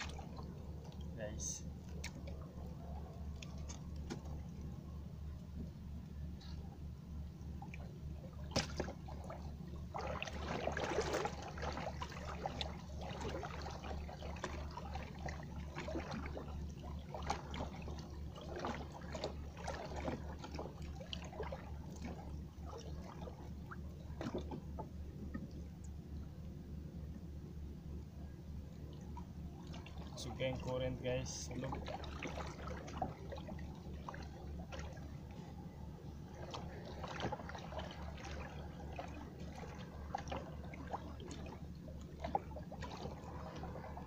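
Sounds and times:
water sloshing and dripping: 0.0s - 26.2s, 28.4s - 44.0s
low pulsing motor hum: 0.0s - 44.0s.

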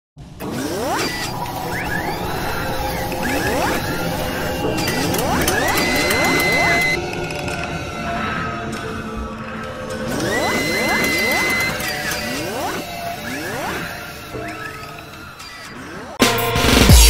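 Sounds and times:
music: 0.2s - 17.0s
mechanical clanks: 0.4s - 16.2s.

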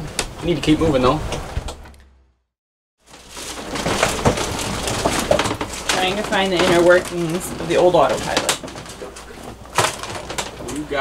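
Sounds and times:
gear knocking and clattering: 3.1s - 11.0s.

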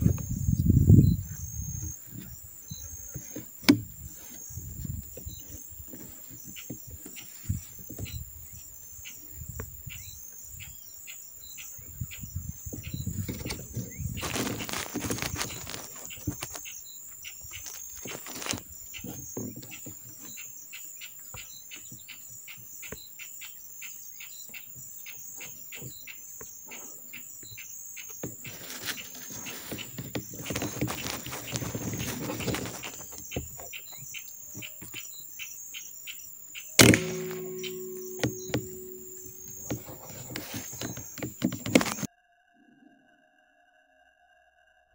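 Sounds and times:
insects chirping: 0.0s - 42.1s
rustling noise: 12.7s - 16.7s, 17.5s - 20.4s, 28.2s - 33.7s, 36.8s - 42.1s
rifle shot: 36.8s - 39.8s.

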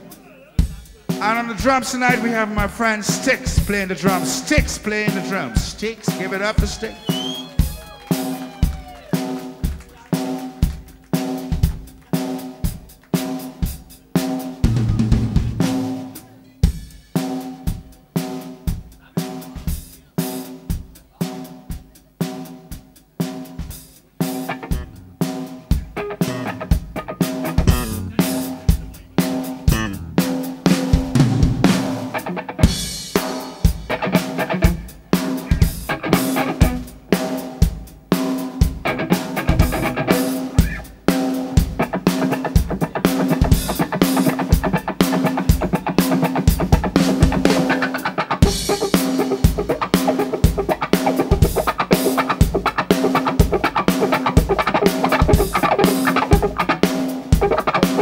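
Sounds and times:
drum kit slow steady beat: 0.0s - 58.0s
electric guitar: 24.3s - 37.4s, 38.6s - 58.0s
electric bass: 24.6s - 30.6s.

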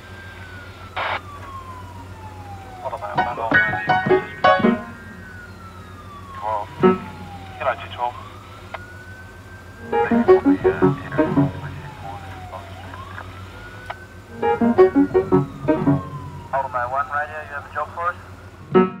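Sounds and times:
steady low hum: 0.0s - 19.0s
wailing siren: 0.0s - 19.0s
bursts of voices: 2.8s - 4.1s, 6.3s - 8.3s, 10.0s - 13.1s, 16.5s - 18.4s.

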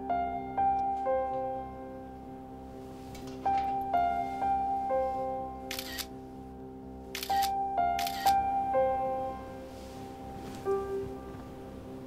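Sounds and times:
soft keyboard music: 0.0s - 12.0s
phone camera shutter clicking: 5.7s - 6.1s, 7.2s - 8.4s.

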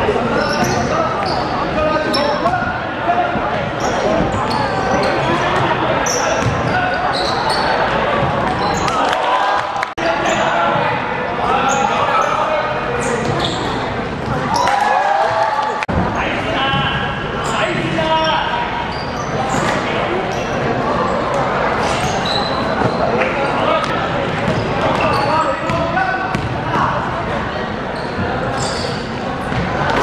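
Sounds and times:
short high shoe squeaks: 0.4s - 2.5s, 3.8s - 7.9s, 8.6s - 9.0s, 11.6s - 13.8s, 17.4s - 20.5s, 21.8s - 23.2s, 24.6s - 25.7s, 27.9s - 29.6s.

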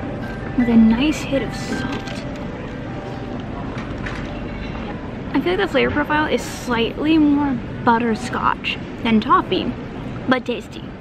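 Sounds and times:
low airport terminal rumble: 0.0s - 11.0s
murmur of distant voices: 0.0s - 11.0s.

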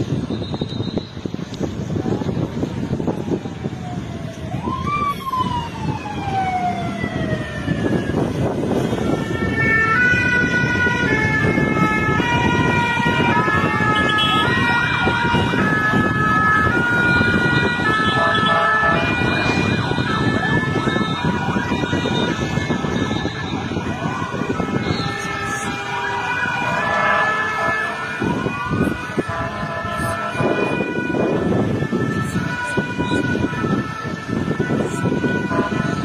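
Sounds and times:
fire engine siren: 0.0s - 36.0s
loud background noise: 0.0s - 36.0s.

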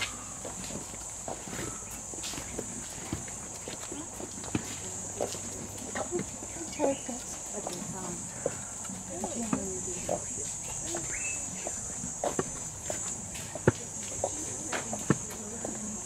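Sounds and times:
faint voices: 0.0s - 16.0s
footsteps on dirt path: 0.0s - 16.0s
insects droning: 0.0s - 16.0s.

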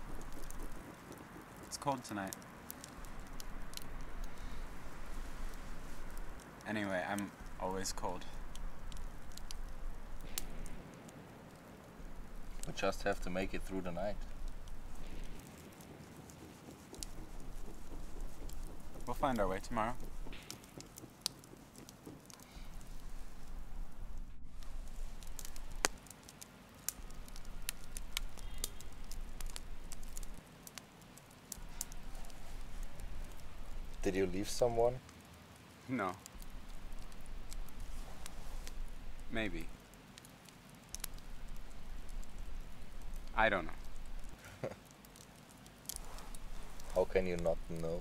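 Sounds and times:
low steady rumble: 0.0s - 21.9s, 22.5s - 26.1s, 31.6s - 34.6s, 36.3s - 39.8s
campfire crackling and popping: 0.0s - 48.0s
low steady hiss: 0.0s - 48.0s.

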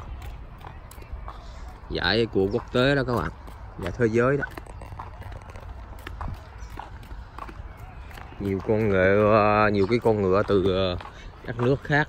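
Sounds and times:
footsteps on asphalt: 0.0s - 12.0s.

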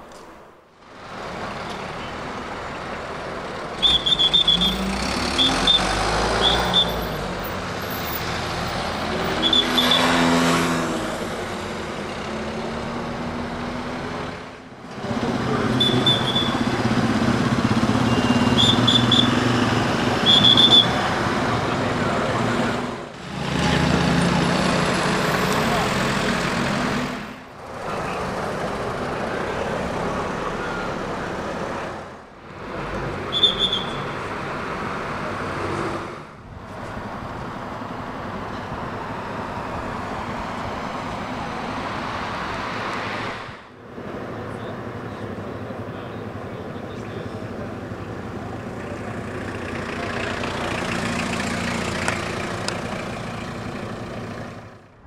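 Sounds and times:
cars and motorcycles passing: 0.8s - 55.0s.

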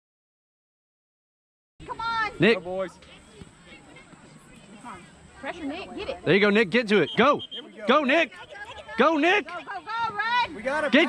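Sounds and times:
distant voices calling: 1.8s - 11.0s.

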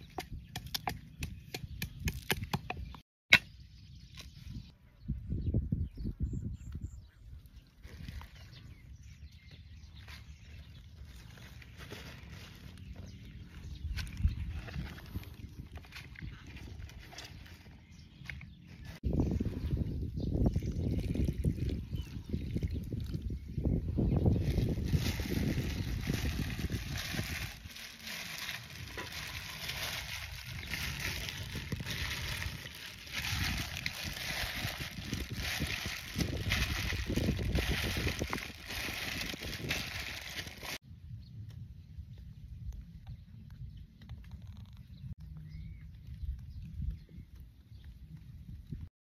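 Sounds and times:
plastic bag crinkling: 24.4s - 40.8s.

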